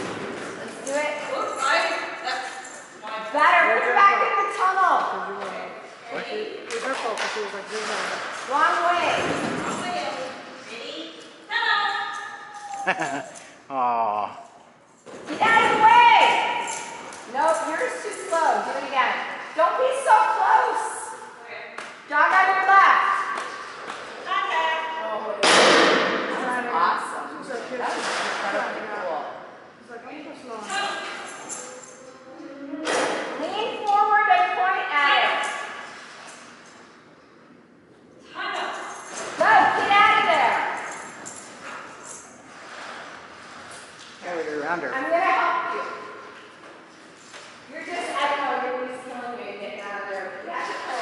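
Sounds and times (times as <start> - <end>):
people talking in echoing hall: 0.0 - 51.0.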